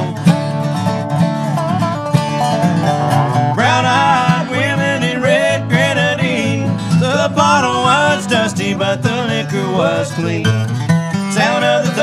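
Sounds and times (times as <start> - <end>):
voices singing: 0.0 - 0.5, 3.3 - 12.0
resonator guitar: 0.0 - 12.0
strummed acoustic guitar: 0.0 - 12.0.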